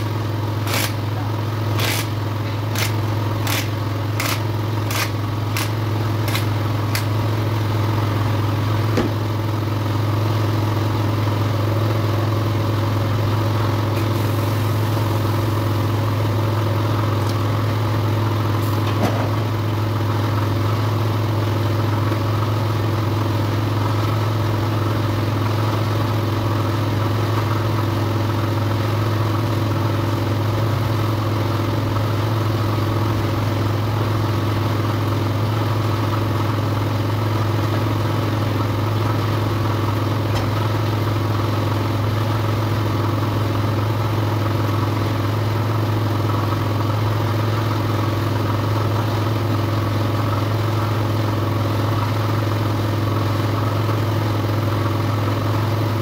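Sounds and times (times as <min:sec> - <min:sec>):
machine drone with low hum: 0:00.0 - 0:09.3.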